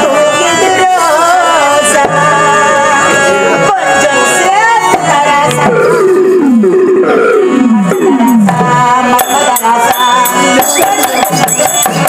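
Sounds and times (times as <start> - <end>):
stage music: 0.0 - 12.0
rough roar-like cries: 5.6 - 8.4.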